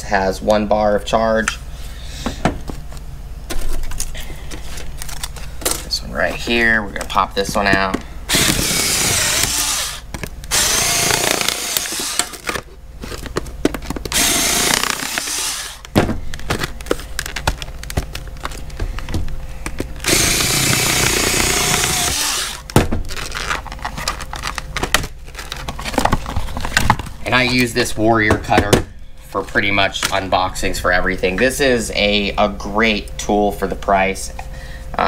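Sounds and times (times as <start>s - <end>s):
power cutter motor whirring: 8.3s - 12.5s, 14.1s - 15.9s, 20.0s - 22.7s
plastic crackling and snapping: 11.1s - 27.7s.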